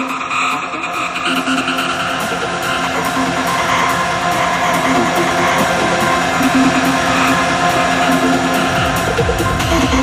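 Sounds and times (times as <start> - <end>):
psytrance electronic music: 0.0 - 10.0.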